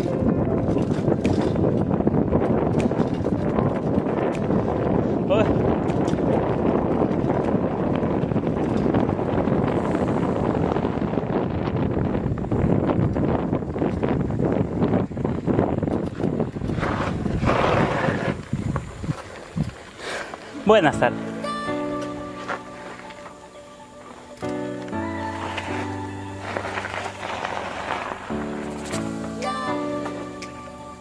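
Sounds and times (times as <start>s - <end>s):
bicycle rattling over dirt road: 0.0s - 31.0s
wind on microphone: 0.0s - 31.0s.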